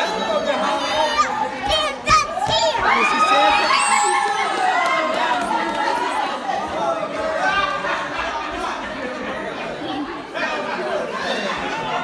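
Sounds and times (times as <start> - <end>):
adults chattering: 0.0 - 12.0.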